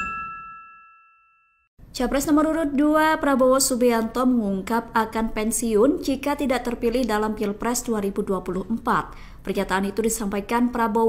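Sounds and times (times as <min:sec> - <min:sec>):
bright chime ding: 0:00.0 - 0:01.7.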